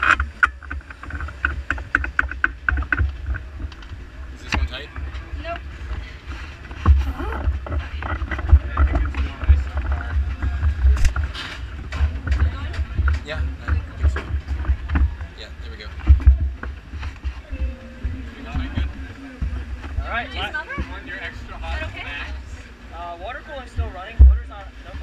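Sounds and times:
wind buffeting microphone: 0:00.0 - 0:22.6
faint voices: 0:00.0 - 0:25.0.

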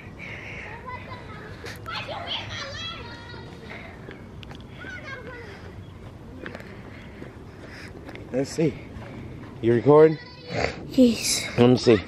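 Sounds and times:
distant children shouting: 0:00.4 - 0:07.7.

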